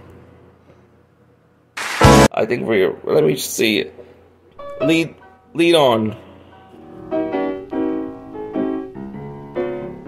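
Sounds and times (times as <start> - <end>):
sudden loud burst of noise: 1.8 - 2.3.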